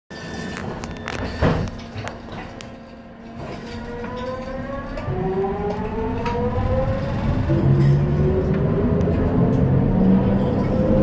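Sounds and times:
train car rumbling on track: 0:00.1 - 0:11.0.

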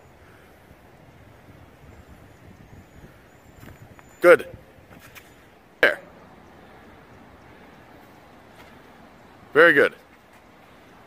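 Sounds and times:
outdoor background noise: 0:00.0 - 0:11.0
man exclaiming: 0:05.8 - 0:06.1.

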